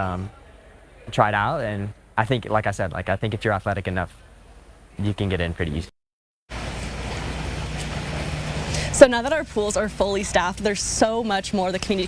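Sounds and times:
low even hum: 6.5 - 12.0.

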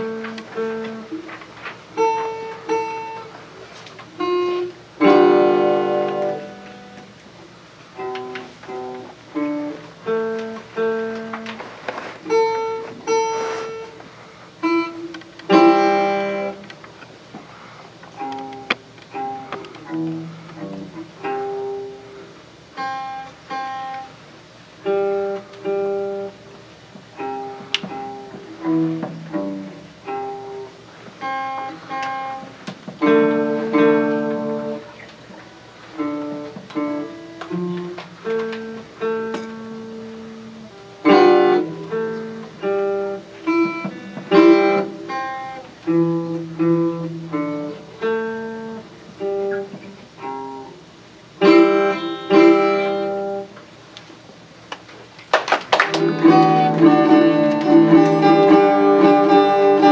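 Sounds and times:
acoustic guitar melody picking: 0.0 - 54.4, 55.8 - 59.9
strummed guitar chords: 4.1 - 7.2, 14.6 - 16.8, 18.1 - 22.2, 27.1 - 53.8, 55.9 - 59.9.

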